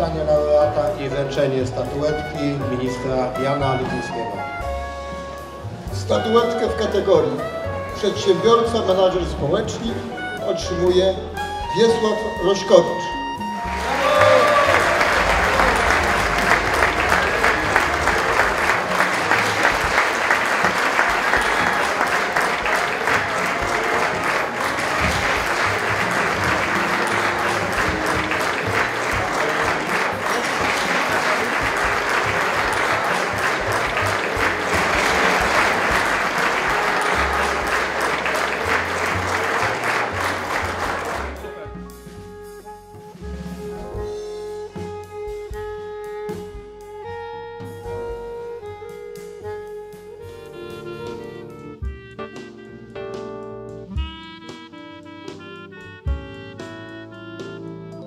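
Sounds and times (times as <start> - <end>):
audience applauding: 13.4 - 41.8.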